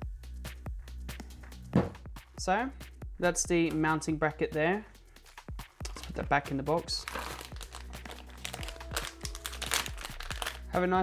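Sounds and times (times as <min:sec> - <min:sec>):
plastic bag crinkling: 0:05.9 - 0:06.2, 0:06.9 - 0:10.7.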